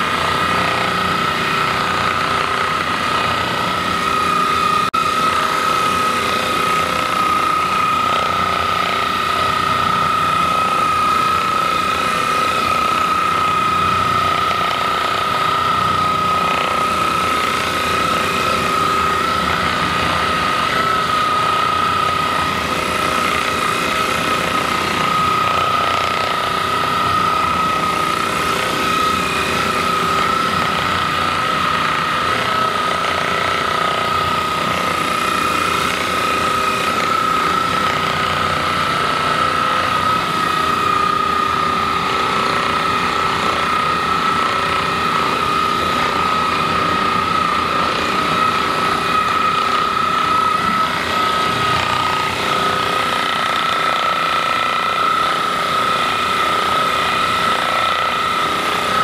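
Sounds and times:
massage gun whining and buzzing: 0.0s - 59.0s.

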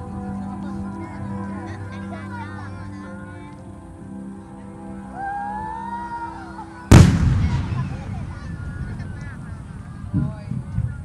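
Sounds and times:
firework boom rumbling: 6.9s - 11.0s.

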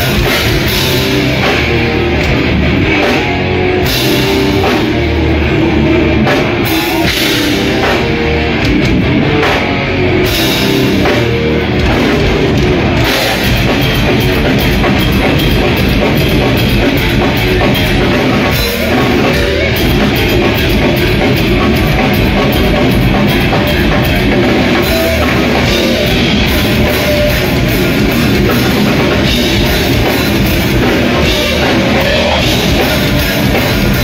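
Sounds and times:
distorted electric guitar: 0.0s - 34.0s
pounding drum kit: 0.0s - 34.0s.

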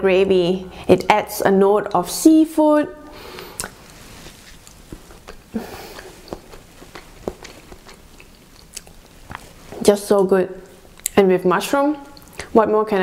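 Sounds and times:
person chewing with wet mouth clicks: 3.4s - 3.8s, 4.7s - 9.6s, 10.6s - 11.2s, 12.1s - 12.5s.

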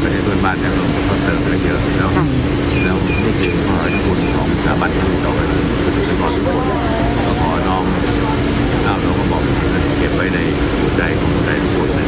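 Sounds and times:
loud mechanical drone: 0.0s - 12.0s
voices talking faintly: 0.0s - 12.0s.

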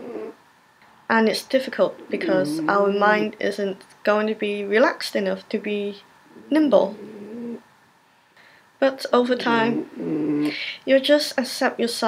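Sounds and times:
woman humming: 0.0s - 0.3s, 2.0s - 3.2s, 9.4s - 10.6s
woman speaking: 1.1s - 7.0s, 8.8s - 12.0s.

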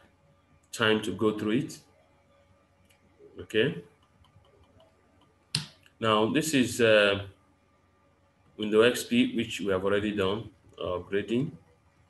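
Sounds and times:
sharp click: 5.6s - 5.8s.

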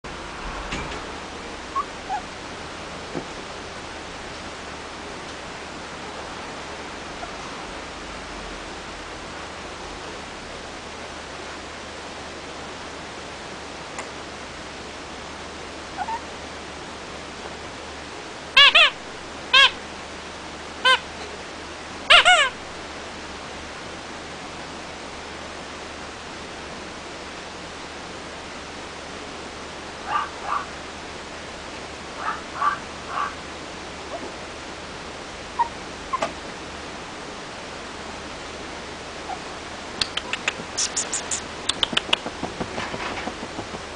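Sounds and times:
steady hiss: 0.1s - 43.9s.

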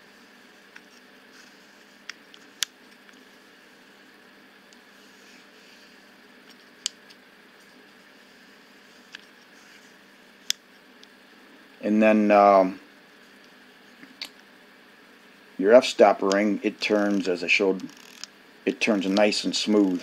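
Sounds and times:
faint steady hiss: 0.0s - 20.0s.

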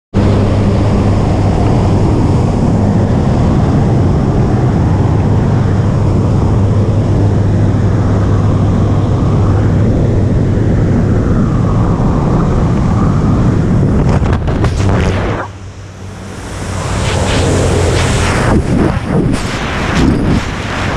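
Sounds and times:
plane engine and propeller drone: 0.1s - 20.9s
rushing air noise: 0.2s - 20.9s.

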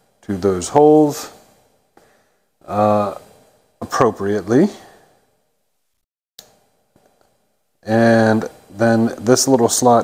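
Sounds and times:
faint click: 6.4s - 7.4s.

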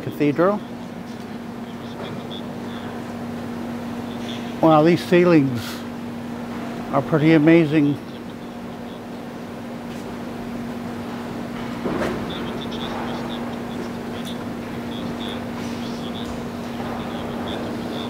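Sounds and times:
people moving and murmuring: 0.0s - 18.0s
steady low hum: 0.0s - 18.0s.

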